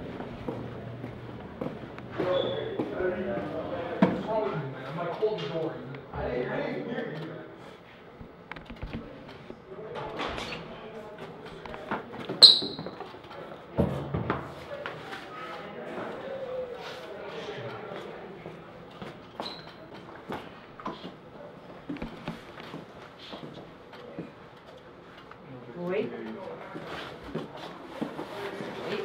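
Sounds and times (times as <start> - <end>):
murmured voices: 0.0 - 29.0
sharp high squeak: 12.4 - 13.0, 19.4 - 19.8.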